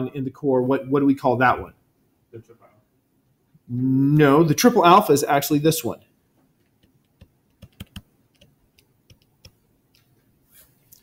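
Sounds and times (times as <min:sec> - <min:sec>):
stylus tapping on tablet screen: 0:06.4 - 0:10.3.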